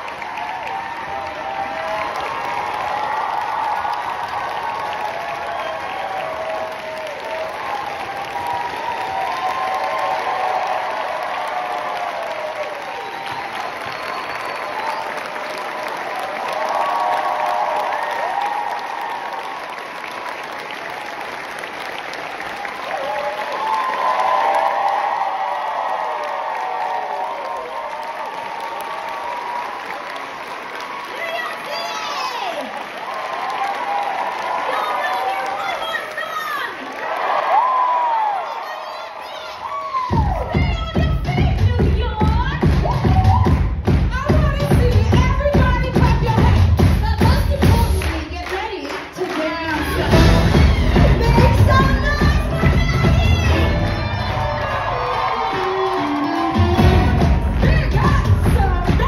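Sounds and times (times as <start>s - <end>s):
audience cheering and whooping: 0.0s - 48.8s, 49.4s - 59.0s
audience applauding: 0.0s - 59.0s.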